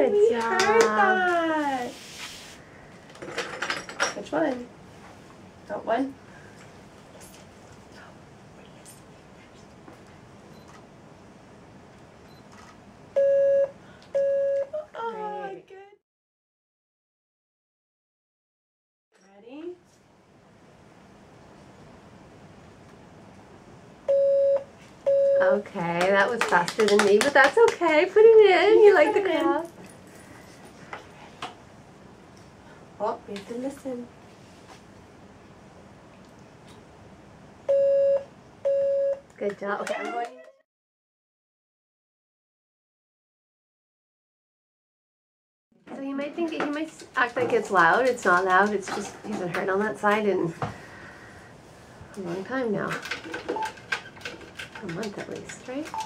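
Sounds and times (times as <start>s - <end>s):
steady single-pitch beep: 13.2s - 14.7s, 24.1s - 25.5s, 37.7s - 39.2s
person exclaiming: 39.9s - 40.6s.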